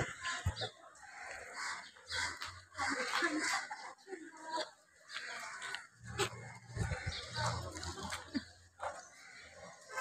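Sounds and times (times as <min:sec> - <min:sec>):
voices of passers-by: 0:00.0 - 0:10.0.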